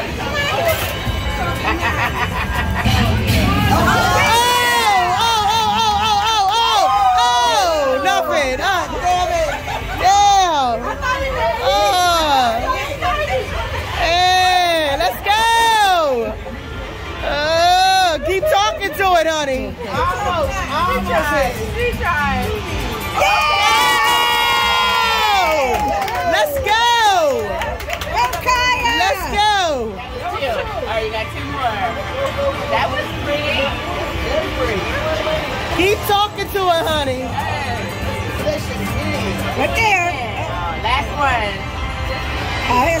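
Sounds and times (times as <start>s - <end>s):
chatter of people: 0.0s - 43.0s
women cheering: 3.5s - 8.6s, 23.1s - 29.3s.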